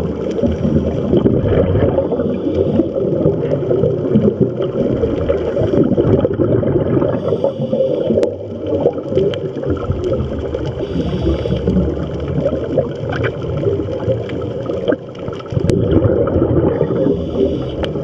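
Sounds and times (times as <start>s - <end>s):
underwater bubbles gurgling: 0.0s - 18.0s.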